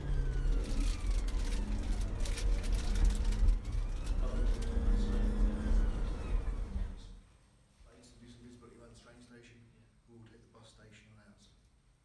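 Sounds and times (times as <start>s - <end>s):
engine and road rumble: 0.0s - 7.2s
siren wailing: 0.0s - 7.2s.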